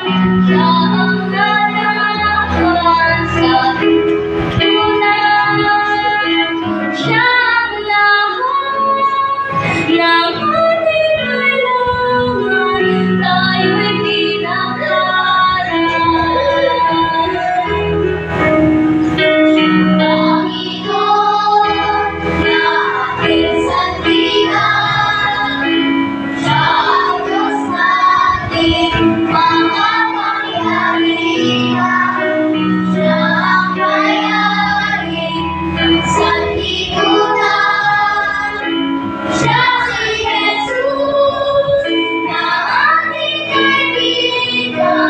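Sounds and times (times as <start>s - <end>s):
children's choir singing: 0.0s - 45.0s
instrumental accompaniment: 0.0s - 45.0s.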